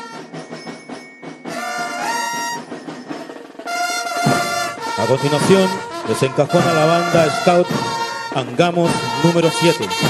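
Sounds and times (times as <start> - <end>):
marching drums: 0.0 - 10.0
trumpets holding a long note: 1.5 - 2.8, 3.6 - 10.0.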